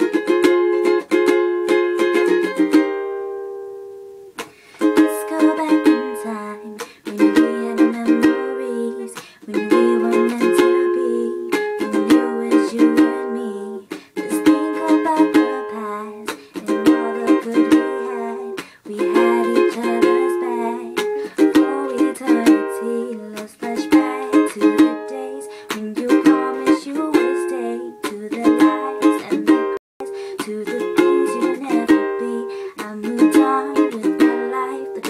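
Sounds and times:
ukulele strumming: 0.0 - 35.0.

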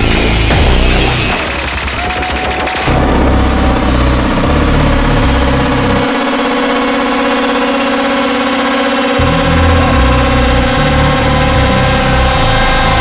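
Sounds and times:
distorted synth drone: 0.0 - 13.0
low bass line: 0.0 - 13.0.

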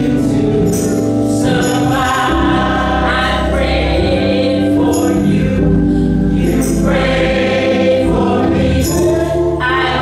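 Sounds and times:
choir singing: 0.0 - 10.0
instrumental accompaniment: 0.0 - 10.0.

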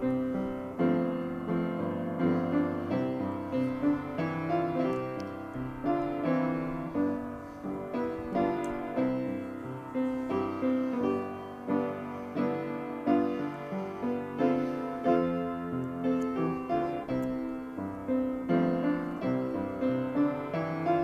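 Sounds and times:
solo piano playing a hymn: 0.0 - 21.0.

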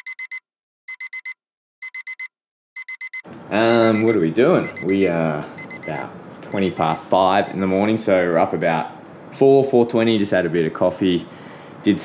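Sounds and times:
digital alarm clock beeping: 0.0 - 7.9.

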